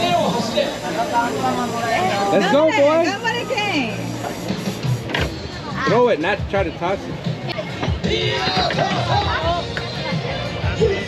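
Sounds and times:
crowd chatter: 0.0s - 11.0s
background music: 3.2s - 11.0s.

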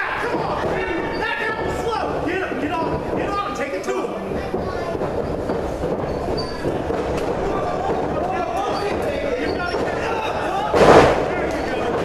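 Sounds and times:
crowd chatter in a hall: 0.0s - 12.0s.

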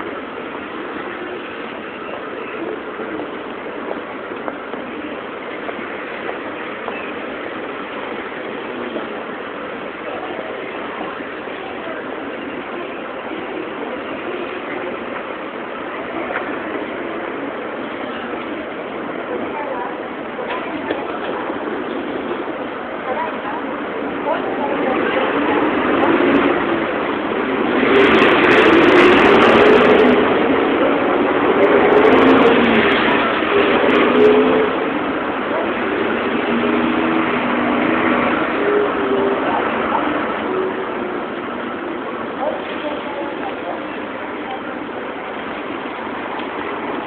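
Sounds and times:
engines idling: 0.0s - 47.0s
pedestrians' voices: 0.0s - 47.0s
street traffic hum: 0.0s - 47.0s.

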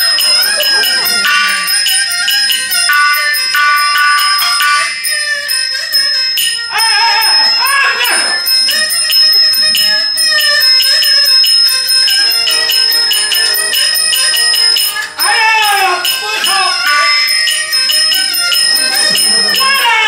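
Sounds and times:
ensemble music with metal percussion: 0.0s - 20.0s
singer crying out: 6.7s - 8.5s, 15.2s - 16.9s, 19.0s - 20.0s.

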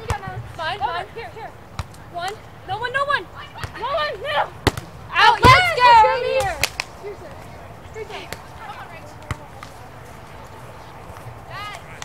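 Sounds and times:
players shouting: 2.2s - 12.0s
volleyball slaps: 4.6s - 7.0s, 9.2s - 9.8s.

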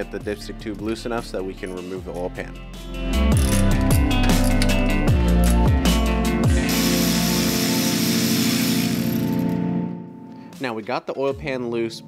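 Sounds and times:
electric ratchet motor whirring: 6.5s - 9.3s.

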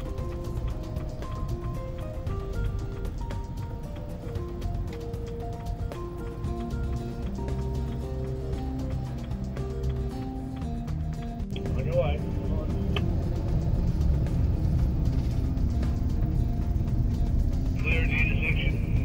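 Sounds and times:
background music: 0.0s - 19.0s
car engine and road rumble: 0.0s - 19.0s.

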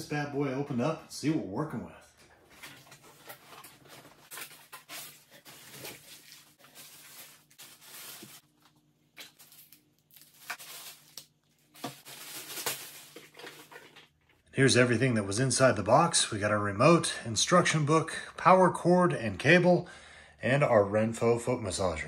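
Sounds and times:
plastic wrapping crackling: 2.5s - 14.4s.

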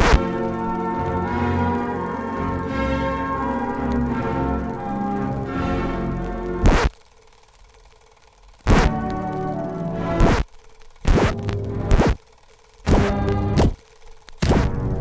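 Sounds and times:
bursts of music: 0.0s - 15.0s
loud whacks of blows: 12.9s - 13.8s, 14.4s - 14.8s.

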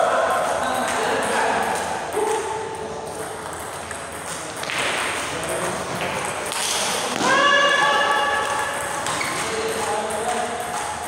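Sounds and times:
voices in a hall: 0.0s - 11.0s.

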